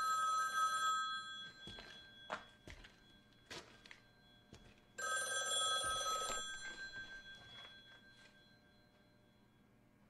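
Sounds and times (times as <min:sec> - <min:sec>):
telephone bell ringing: 0:00.0 - 0:09.7.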